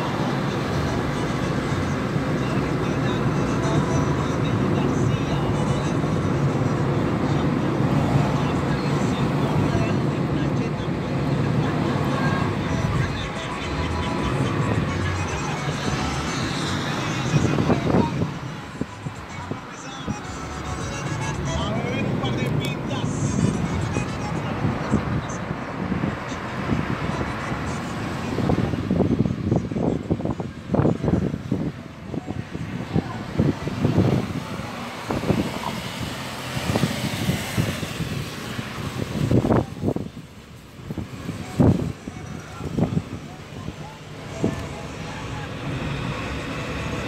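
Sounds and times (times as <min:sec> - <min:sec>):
car cabin road and engine noise: 0:00.0 - 0:47.0
person speaking: 0:07.4 - 0:25.6.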